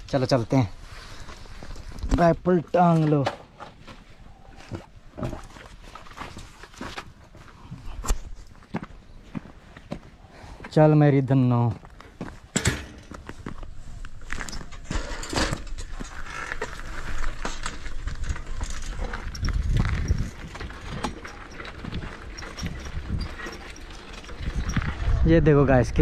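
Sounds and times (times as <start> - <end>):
wind rumbling on microphone: 13.5 - 26.0
bicycle basket and frame rattling: 14.2 - 26.0.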